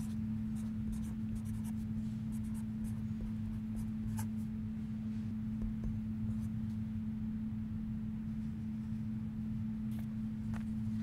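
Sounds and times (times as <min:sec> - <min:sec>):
marker pen scratching on paper: 0:00.0 - 0:03.0
steady low hum: 0:00.0 - 0:11.0.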